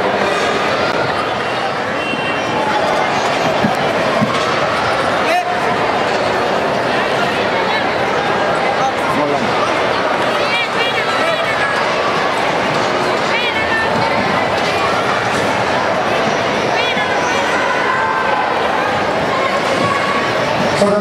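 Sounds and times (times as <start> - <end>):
crowd hubbub in echoing hall: 0.0 - 21.0.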